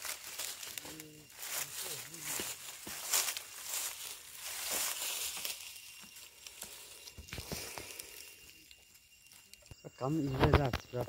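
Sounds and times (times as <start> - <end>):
rustling of dry straw and plants: 0.0 - 11.0.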